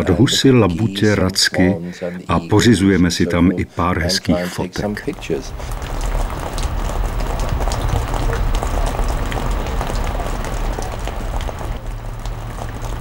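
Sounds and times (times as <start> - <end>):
steady rain falling: 4.8 - 13.0.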